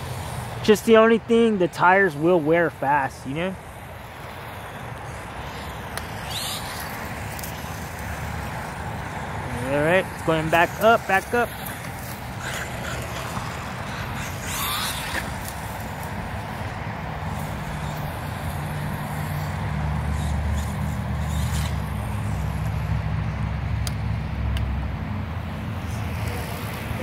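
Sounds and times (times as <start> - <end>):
outdoor noise: 0.0 - 27.0
vehicle engine passing: 0.0 - 27.0.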